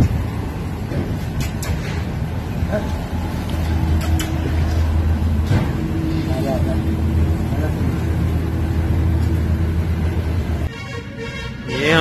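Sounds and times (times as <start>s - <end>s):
low engine hum: 0.0s - 10.7s.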